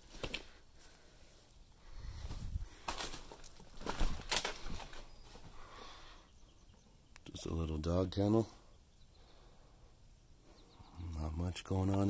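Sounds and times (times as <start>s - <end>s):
footsteps on debris: 0.0s - 5.6s.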